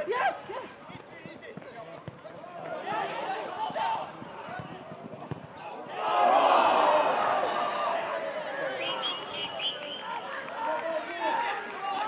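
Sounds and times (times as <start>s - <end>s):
football being kicked: 4.4s - 5.6s.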